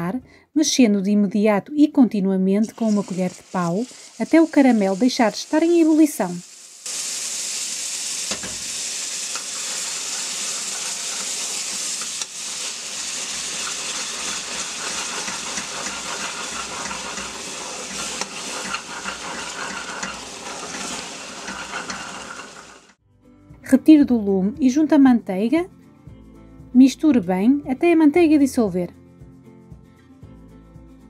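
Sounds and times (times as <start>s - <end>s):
caramel hissing and bubbling: 2.7s - 23.0s
wooden spoon stirring: 13.5s - 22.9s.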